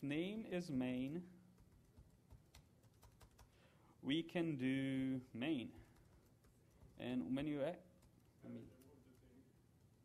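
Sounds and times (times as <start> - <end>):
typing on computer keyboard: 1.0 - 3.6, 5.7 - 7.1.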